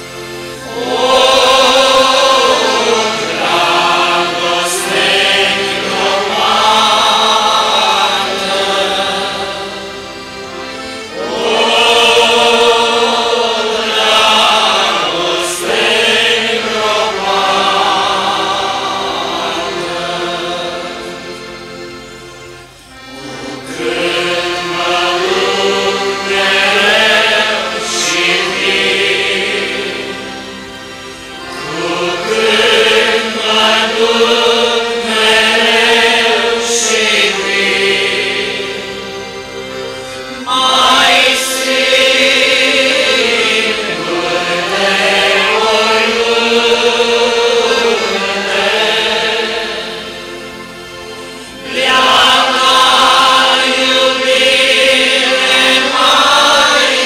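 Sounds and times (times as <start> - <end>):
congregation singing a hymn: 0.0 - 57.0.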